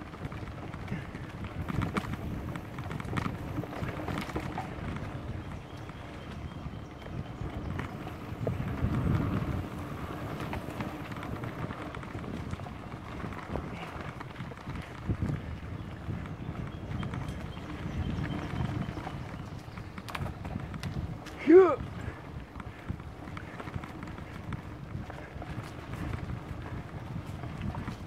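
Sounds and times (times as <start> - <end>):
bike tyres rolling on dirt: 0.0 - 28.0
bike knocks and rattles: 0.1 - 6.4, 7.0 - 21.6.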